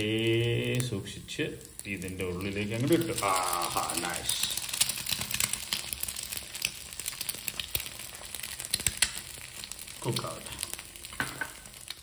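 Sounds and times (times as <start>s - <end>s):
crackling pops: 0.0s - 12.0s
egg sizzling in a pan: 0.0s - 12.0s.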